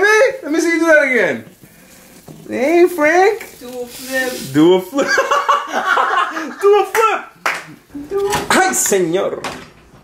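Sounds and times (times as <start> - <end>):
people laughing: 5.0 - 7.0.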